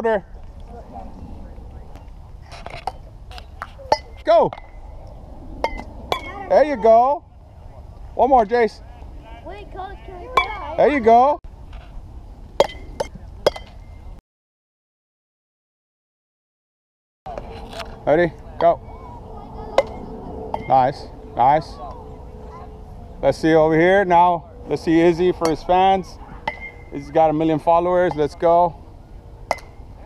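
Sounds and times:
low rumble: 0.2s - 3.5s, 4.5s - 8.2s, 17.9s - 26.9s
metal bat striking baseball: 3.8s - 4.8s, 5.6s - 6.4s, 12.6s - 13.9s, 19.8s - 20.8s, 25.3s - 25.8s, 26.4s - 27.1s, 28.0s - 28.5s, 29.5s - 29.8s
faint distant voices: 17.3s - 30.0s.

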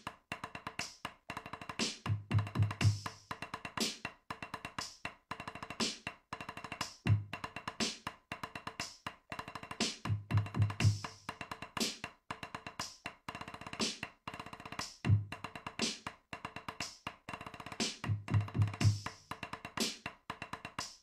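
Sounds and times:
hi-hat and snare hits: 0.0s - 1.1s, 1.7s - 4.1s, 4.7s - 5.1s, 5.7s - 6.1s, 6.8s - 8.1s, 8.8s - 9.0s, 9.8s - 12.1s, 12.8s - 13.1s, 13.8s - 14.1s, 15.8s - 16.1s, 16.8s - 20.1s, 20.8s - 21.0s.

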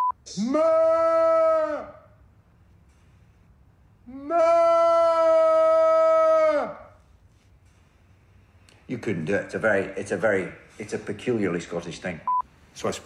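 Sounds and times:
man giving long keening cry: 0.2s - 2.1s, 4.0s - 7.0s.

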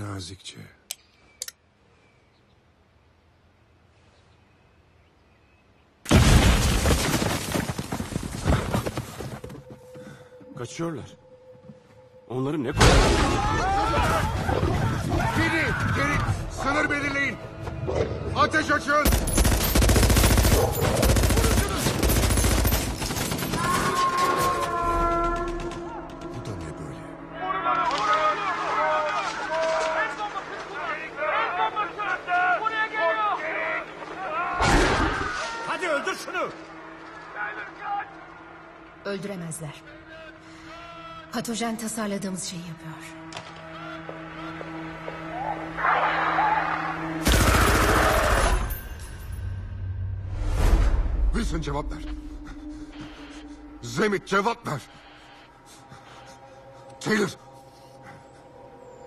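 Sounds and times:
tense film score: 7.8s - 59.0s
automatic gunfire: 19.1s - 24.0s.

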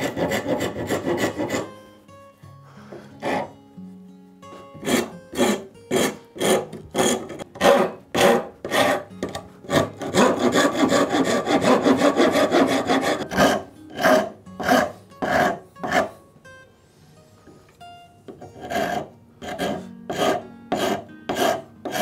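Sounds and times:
wood rasp scraping strokes: 0.0s - 1.8s, 2.9s - 3.6s, 4.8s - 16.2s, 18.4s - 22.0s.

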